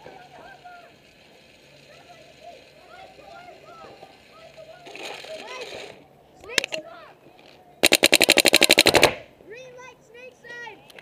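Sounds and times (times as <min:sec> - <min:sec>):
distant shouting voices: 0:00.0 - 0:11.0
paintballs rattling into loader: 0:00.2 - 0:06.8, 0:07.8 - 0:09.2.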